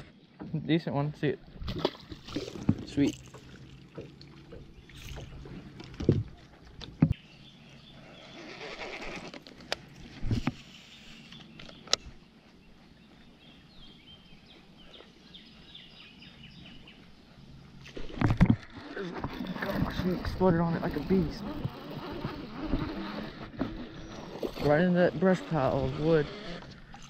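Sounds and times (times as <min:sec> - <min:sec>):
fishing line whirring out: 0:07.9 - 0:11.7, 0:17.7 - 0:27.0.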